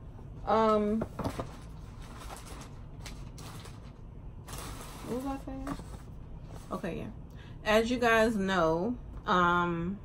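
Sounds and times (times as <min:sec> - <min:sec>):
objects rustling and knocking: 0:00.8 - 0:06.8.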